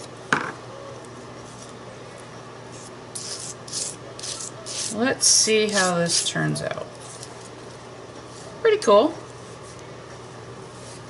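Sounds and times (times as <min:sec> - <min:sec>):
palette knife scraping paste: 0:02.8 - 0:05.0, 0:05.6 - 0:06.4.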